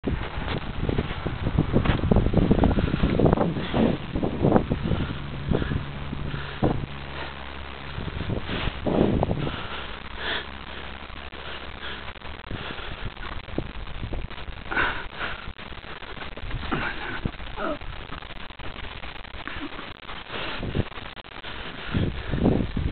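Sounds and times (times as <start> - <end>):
wind noise: 0.0 - 22.9
horses sniffing and blowing: 0.1 - 22.9.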